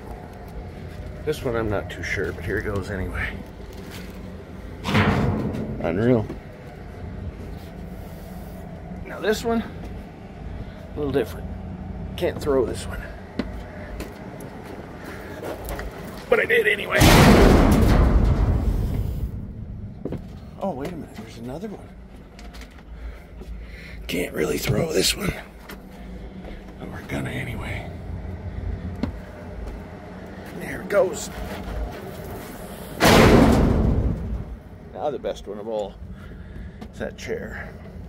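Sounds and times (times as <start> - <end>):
junk crashing into metal dumpster: 4.8 - 6.2, 17.0 - 19.6, 33.0 - 34.6.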